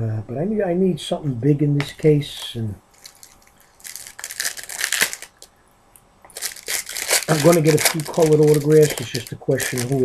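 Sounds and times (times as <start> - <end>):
foil wrapper crinkling and tearing: 2.9 - 5.5, 6.3 - 10.0.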